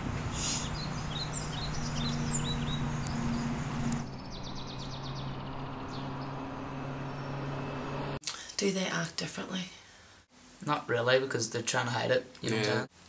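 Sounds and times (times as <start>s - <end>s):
small birds chirping: 0.3s - 8.2s.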